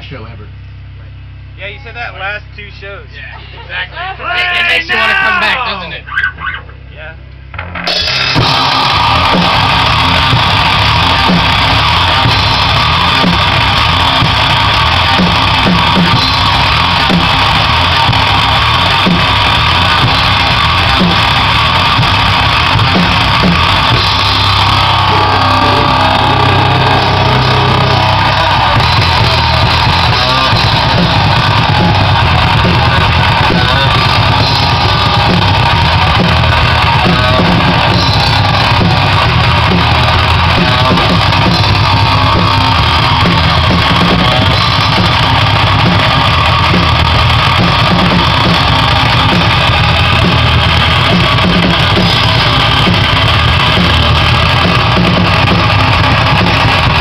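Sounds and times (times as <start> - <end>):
loud electric guitar: 7.5 - 57.0
drum kit with crashing cymbals: 7.9 - 57.0.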